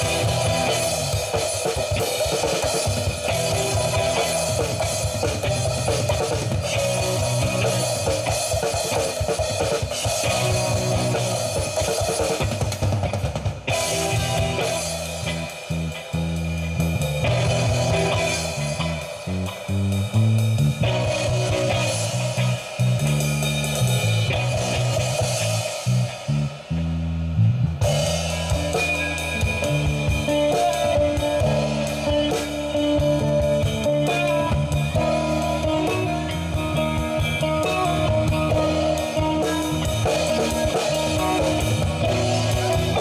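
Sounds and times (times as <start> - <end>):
drum kit cymbals: 0.0 - 43.0
electric bass: 0.0 - 43.0
electric guitar: 0.0 - 43.0.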